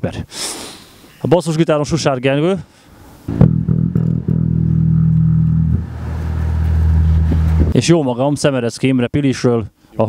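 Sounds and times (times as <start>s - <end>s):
electric bass guitar notes: 3.3s - 7.8s.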